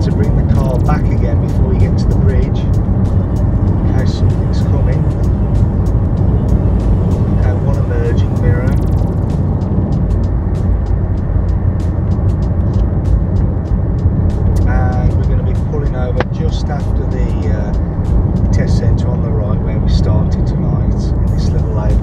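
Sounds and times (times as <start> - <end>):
car engine and tyre rumble: 0.0 - 22.0.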